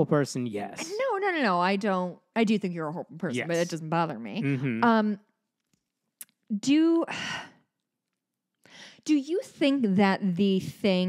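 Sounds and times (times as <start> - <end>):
person sighing: 4.4 - 4.8.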